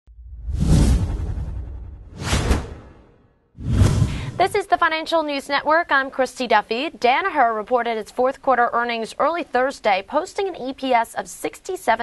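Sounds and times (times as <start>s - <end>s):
deep rumble: 0.1s - 4.4s
whoosh sound effects: 0.4s - 4.4s.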